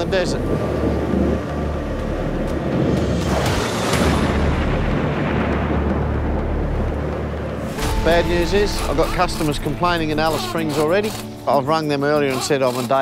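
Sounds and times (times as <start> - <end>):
thunder rumbling: 0.0 - 10.3
background music: 0.0 - 13.0.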